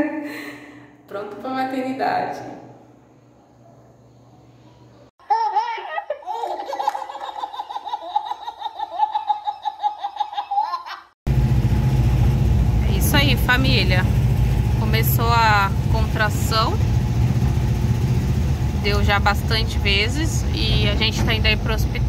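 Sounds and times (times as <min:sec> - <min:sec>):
baby giggling: 0:05.2 - 0:11.1
van engine running: 0:11.3 - 0:22.0.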